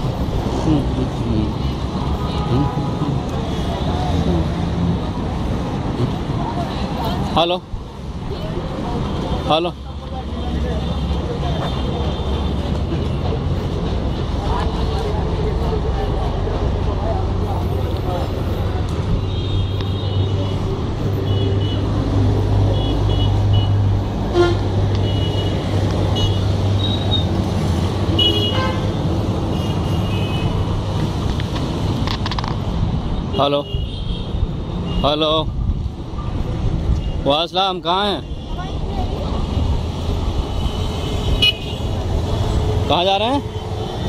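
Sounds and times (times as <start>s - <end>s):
vehicle engines humming: 0.0s - 44.0s.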